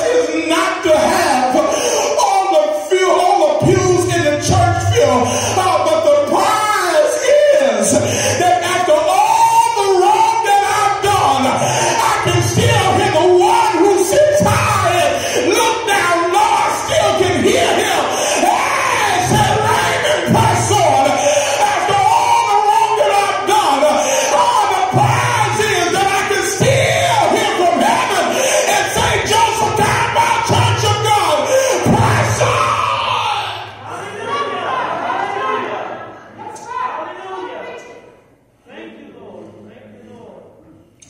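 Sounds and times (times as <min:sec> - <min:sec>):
man talking: 0:00.0 - 0:32.8
preacher shouting and half-singing: 0:00.0 - 0:38.2
congregation calling out: 0:00.0 - 0:40.9
sermon speech: 0:00.0 - 0:40.9.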